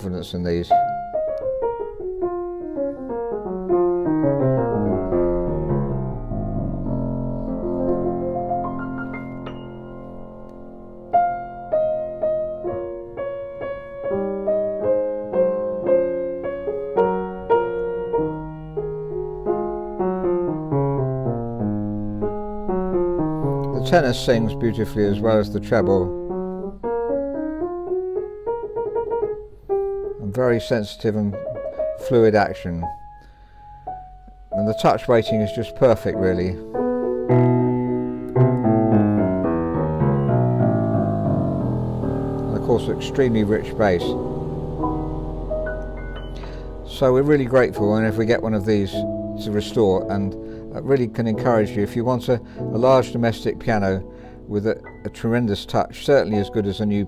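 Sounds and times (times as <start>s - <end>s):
grand piano melody: 0.0s - 57.0s.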